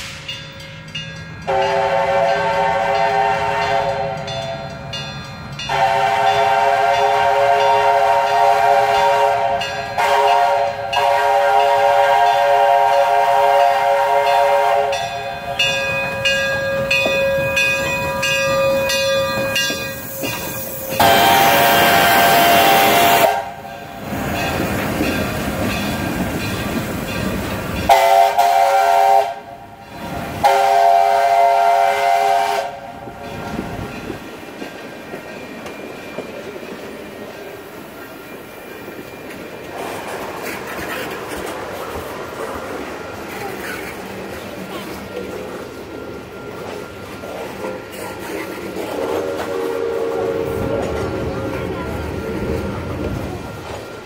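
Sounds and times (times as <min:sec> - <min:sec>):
steam locomotive passing: 0:00.0 - 0:54.0
steam whistle: 0:01.5 - 0:04.6, 0:05.7 - 0:15.8, 0:16.7 - 0:23.7, 0:27.9 - 0:29.8, 0:30.4 - 0:33.0, 0:48.8 - 0:50.9
loud steam hissing: 0:16.7 - 0:34.4, 0:36.5 - 0:54.0.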